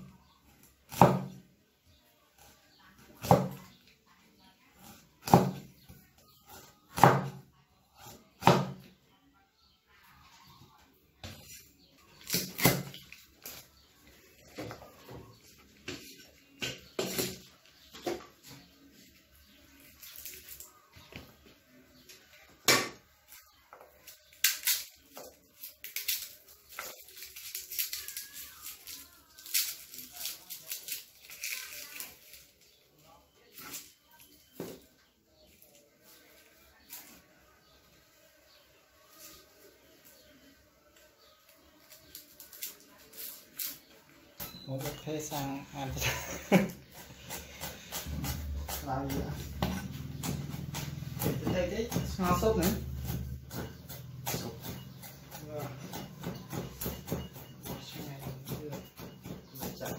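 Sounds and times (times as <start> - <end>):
garlic bulb breaking apart: 24.3 - 32.4.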